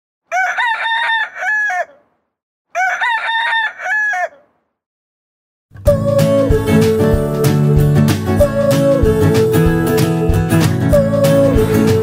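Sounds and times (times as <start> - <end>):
rooster crowing: 0.3 - 4.6
music: 5.8 - 12.0.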